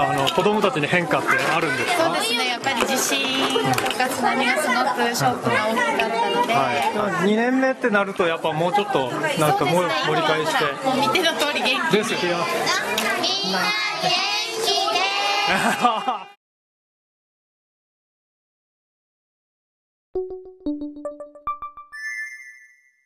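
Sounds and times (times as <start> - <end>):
young children chattering: 0.0 - 7.5, 8.4 - 16.2.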